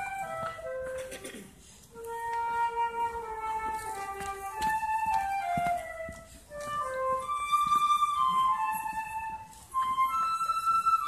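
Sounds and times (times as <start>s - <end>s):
solo flute playing held notes: 0.0s - 11.0s.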